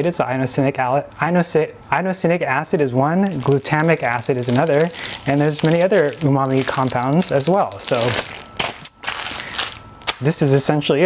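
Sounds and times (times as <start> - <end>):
plastic bag crinkling: 3.2 - 10.7.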